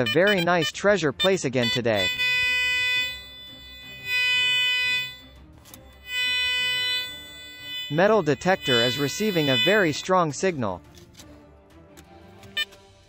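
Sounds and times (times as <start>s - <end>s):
metal detector beeping: 0.0s - 10.0s.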